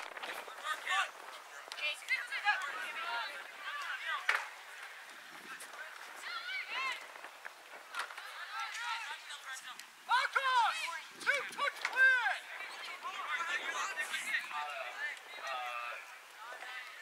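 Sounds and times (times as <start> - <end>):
high voices shouting: 8.0 - 17.0.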